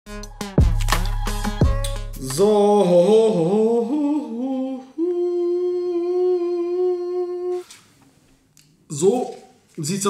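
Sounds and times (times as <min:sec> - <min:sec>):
man humming held note: 0:02.3 - 0:07.7.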